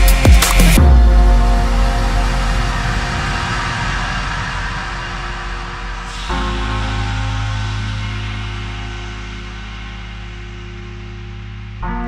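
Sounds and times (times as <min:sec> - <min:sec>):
low bass drone: 0:00.0 - 0:12.0
hissing wash: 0:01.5 - 0:11.8.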